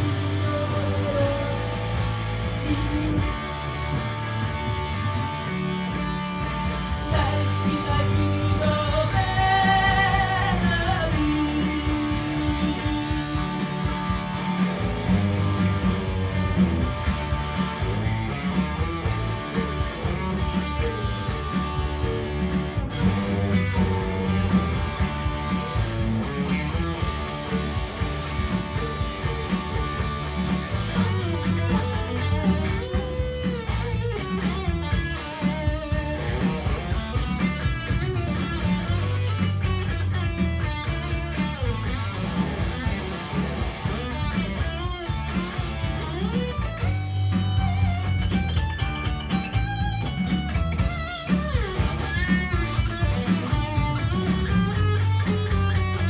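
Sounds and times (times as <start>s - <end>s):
bass and drums backing: 0.0s - 56.0s
electric guitar solo: 0.0s - 56.0s.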